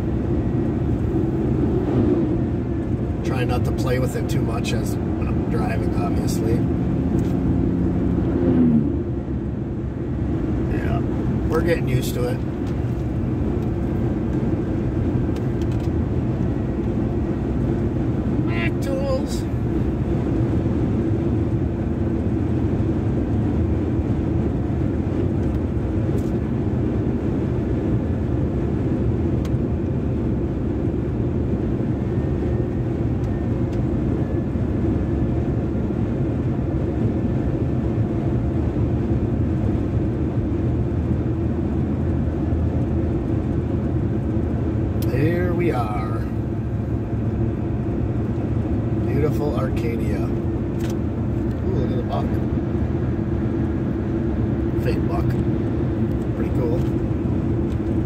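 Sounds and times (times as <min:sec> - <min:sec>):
road and engine noise in truck cab: 0:00.0 - 0:58.0.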